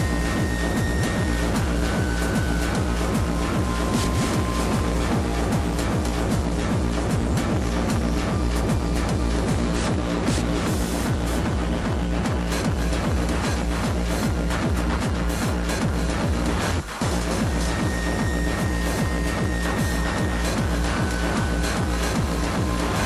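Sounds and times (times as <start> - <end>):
high held tone: 0.0 - 9.1, 17.1 - 23.0
dense electronic layers: 0.0 - 23.0
fast kick drum: 0.0 - 23.0.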